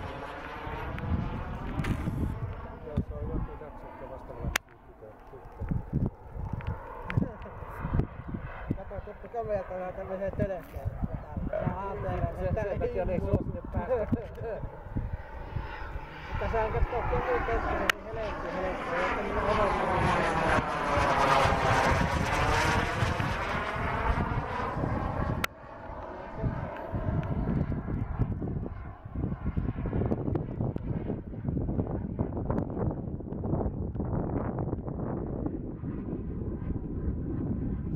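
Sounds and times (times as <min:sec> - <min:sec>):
model jet turbine whine: 0:00.0 - 0:37.9
wind on microphone: 0:00.0 - 0:37.9.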